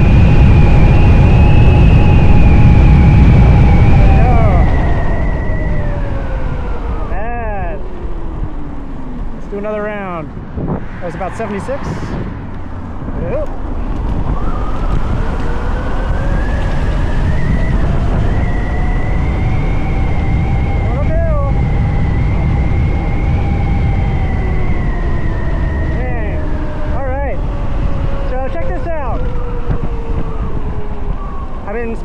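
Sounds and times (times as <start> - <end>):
wind rush on microphone: 0.0 - 32.0
electric motor whining: 12.3 - 31.8.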